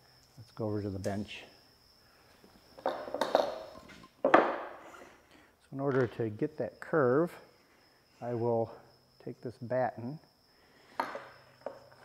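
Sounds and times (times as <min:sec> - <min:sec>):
tools clattering on workbench: 0:02.8 - 0:05.0.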